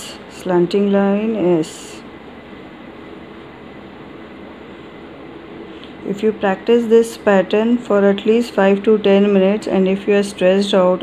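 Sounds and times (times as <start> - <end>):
room hiss and hum: 0.0 - 11.0.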